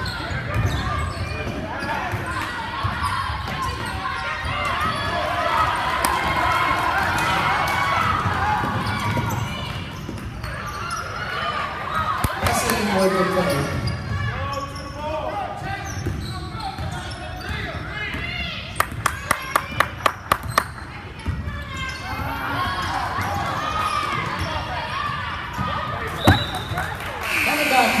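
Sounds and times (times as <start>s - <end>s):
spectators chattering: 19.2s - 28.0s.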